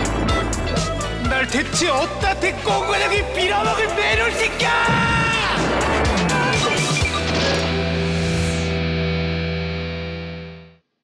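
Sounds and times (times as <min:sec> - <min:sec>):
held trailer music chord: 0:00.0 - 0:04.6.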